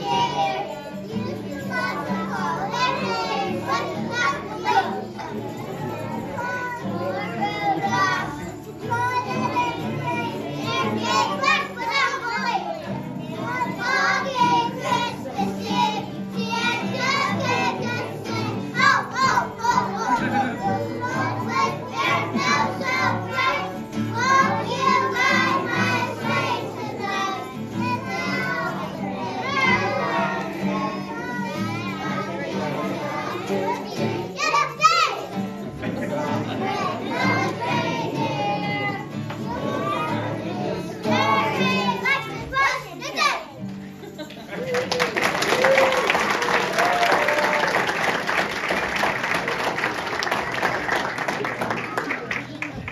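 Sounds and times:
children singing: 0.0 - 44.2
accompanying music: 0.0 - 52.9.

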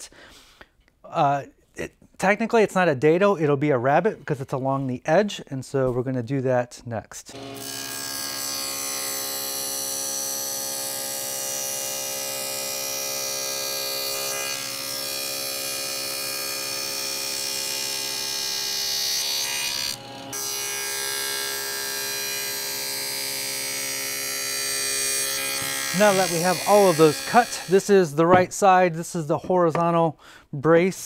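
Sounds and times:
table saw cutting plywood: 7.3 - 28.6.

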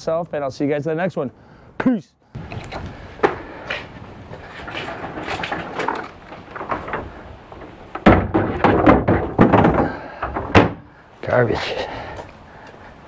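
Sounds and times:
spreader rattling over concrete: 2.5 - 10.7
garbage cart thuds and clatters: 3.2 - 10.8.

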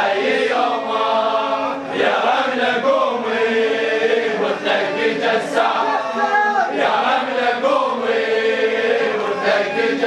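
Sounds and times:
crowd of men chanting: 0.0 - 10.0.

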